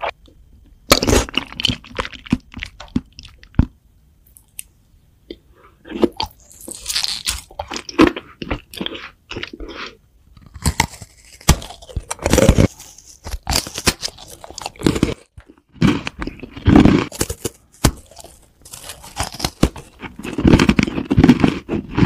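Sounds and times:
crunchy cookie chewing: 0:05.9 - 0:22.0.

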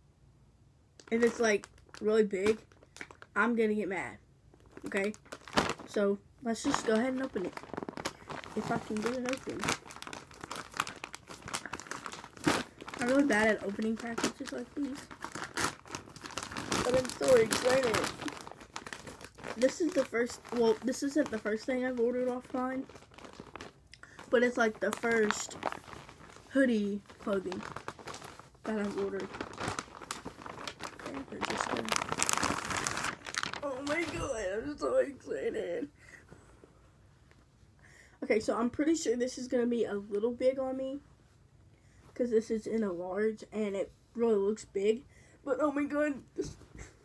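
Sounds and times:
package crinkling and rustling: 0:01.0 - 0:03.5, 0:04.5 - 0:35.0.

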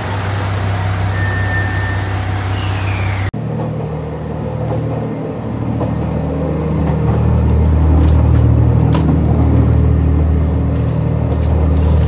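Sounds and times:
moving train rumbling: 0:00.0 - 0:12.0.

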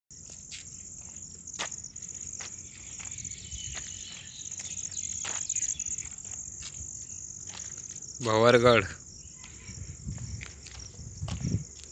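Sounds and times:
high-pitched insect trill: 0:00.1 - 0:11.9.

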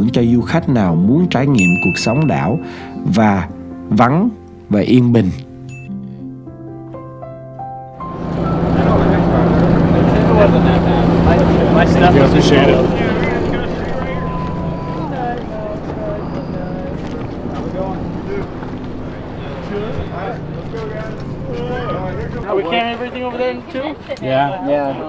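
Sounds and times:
people talking: 0:00.0 - 0:05.4, 0:08.2 - 0:25.0
ferry engine humming: 0:08.0 - 0:25.0.

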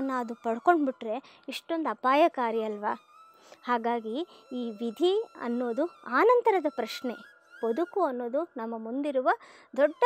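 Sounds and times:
woman speaking: 0:00.0 - 0:03.0, 0:03.7 - 0:10.0.

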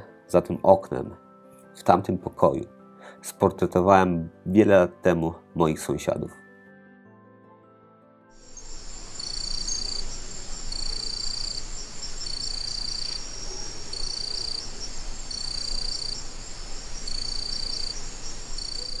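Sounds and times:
crickets chirping: 0:08.4 - 0:19.0
loud cricket trill: 0:08.4 - 0:19.0.

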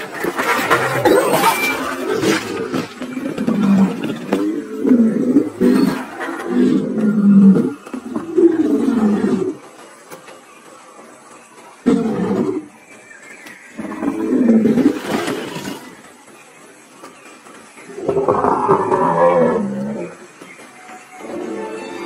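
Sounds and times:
dragon growling roars: 0:18.0 - 0:20.2.

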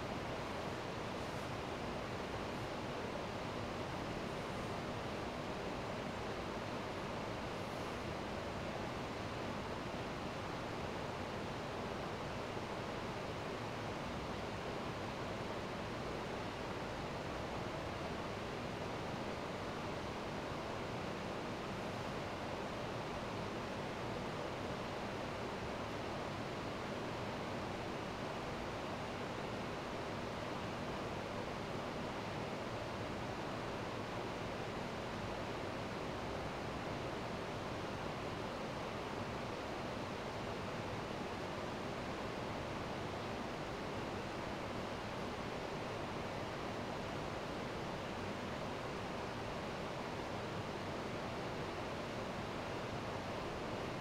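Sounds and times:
room noise hiss: 0:00.0 - 0:54.0.

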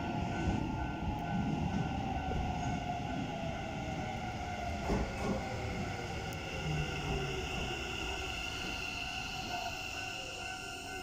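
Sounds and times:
electric train slowing: 0:00.0 - 0:11.0.

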